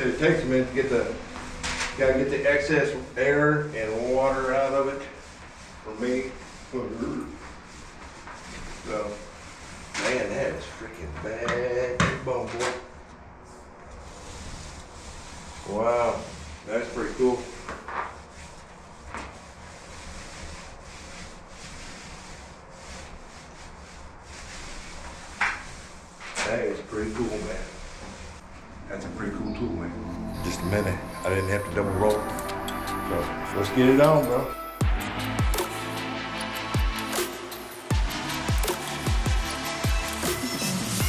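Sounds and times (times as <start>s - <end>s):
paint roller rubbing on wall: 0.0s - 29.1s, 30.3s - 41.0s
steady low hum: 27.1s - 33.9s.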